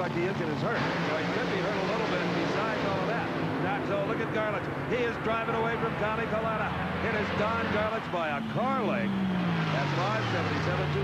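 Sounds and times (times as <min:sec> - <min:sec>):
man's voice: 0:00.0 - 0:09.1, 0:09.8 - 0:11.0
dragster engines at full throttle: 0:00.0 - 0:11.0.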